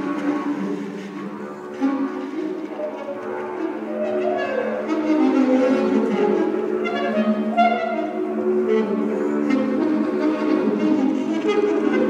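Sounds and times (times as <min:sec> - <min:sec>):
alto saxophone wavering phrases: 0:00.0 - 0:12.0.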